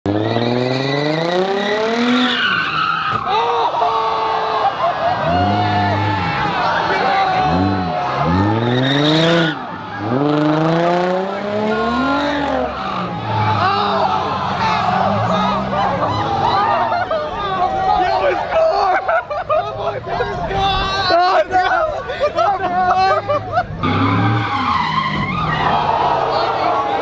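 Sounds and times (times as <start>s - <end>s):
car engine revving hard: 0.1s - 2.4s, 5.2s - 13.7s
crowd voices: 1.3s - 27.0s
tyres squealing: 22.5s - 27.0s.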